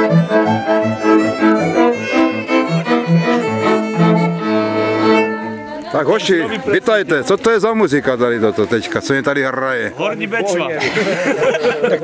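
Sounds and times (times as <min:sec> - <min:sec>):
folk band with fiddles and accordion: 0:00.0 - 0:12.0.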